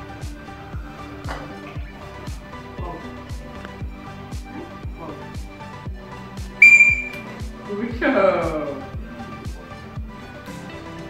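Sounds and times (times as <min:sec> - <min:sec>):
music with a steady beat: 0:00.0 - 0:11.0
whistle blast: 0:06.6 - 0:07.3.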